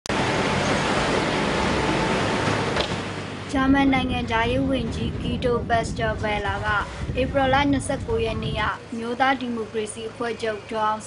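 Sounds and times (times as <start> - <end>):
road traffic rush: 0.0 - 11.0.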